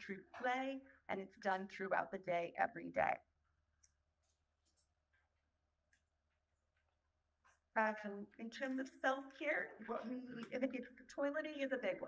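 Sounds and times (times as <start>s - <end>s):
woman speaking: 0.0s - 3.2s, 7.8s - 12.0s.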